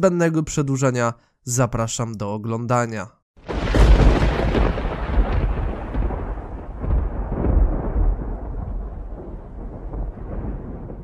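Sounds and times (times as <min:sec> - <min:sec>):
thunder rumbling: 0:03.4 - 0:11.0.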